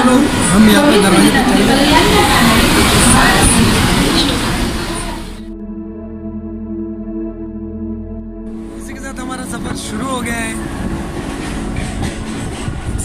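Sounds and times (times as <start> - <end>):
busy crowd voices: 0.0 - 5.5
sustained synth chord: 4.6 - 13.0.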